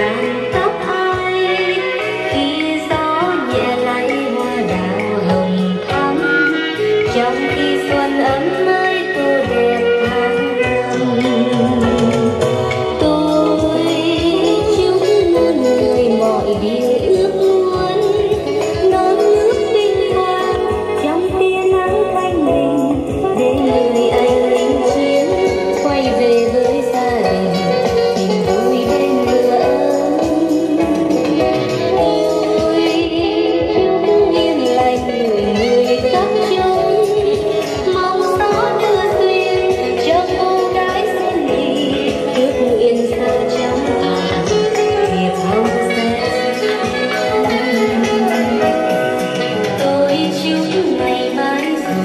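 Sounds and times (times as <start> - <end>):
guitar music through speakers: 0.0 - 52.0
song with singing voice and bass beat: 0.0 - 52.0.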